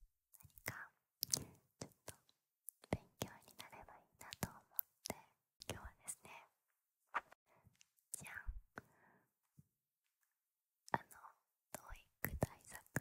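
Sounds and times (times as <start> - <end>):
woman whispering: 0.5 - 2.2, 2.8 - 6.6, 8.1 - 8.9, 10.9 - 13.0.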